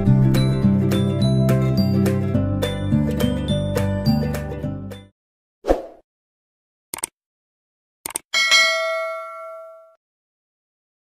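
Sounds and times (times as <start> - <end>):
bell ding: 8.4 - 10.0.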